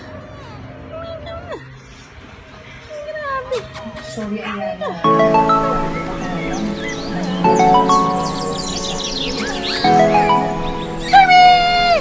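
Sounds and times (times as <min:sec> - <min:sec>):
puppies whining and squeaking: 0:06.0 - 0:12.0.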